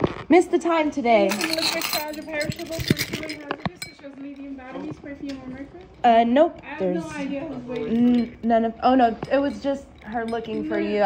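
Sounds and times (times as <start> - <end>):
quiet talking: 0.3 - 11.0
metal keys clinking: 1.2 - 11.0.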